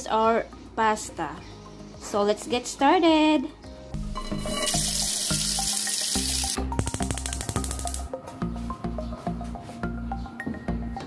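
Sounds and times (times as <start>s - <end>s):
background music: 0.0s - 11.0s
tap water running into pan: 4.5s - 6.6s.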